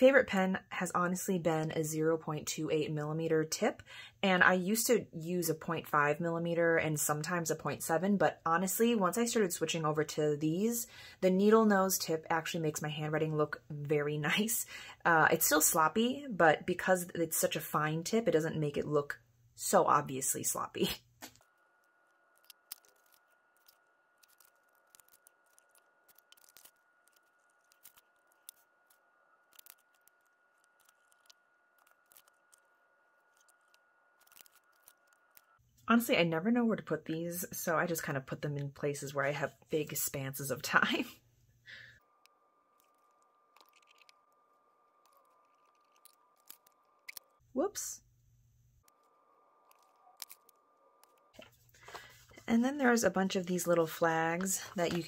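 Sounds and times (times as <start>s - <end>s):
faint high hum: 38.8s - 55.0s.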